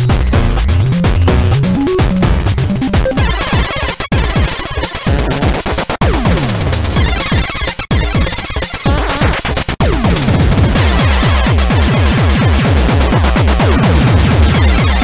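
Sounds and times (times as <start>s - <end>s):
glitchy electronic music: 0.8s - 10.2s.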